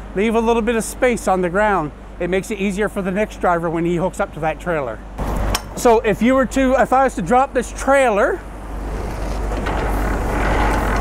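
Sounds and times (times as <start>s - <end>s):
hand crank gears whirring: 8.8s - 11.0s.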